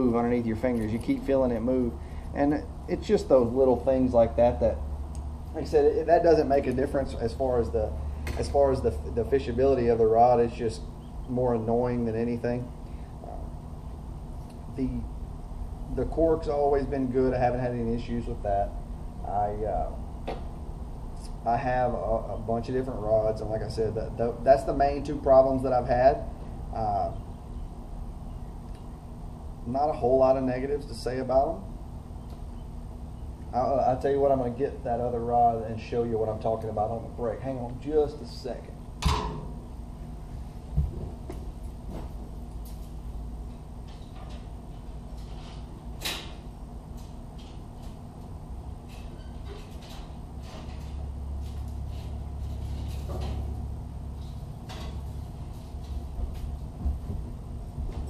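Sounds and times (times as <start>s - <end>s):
low background hum: 0.0s - 58.0s.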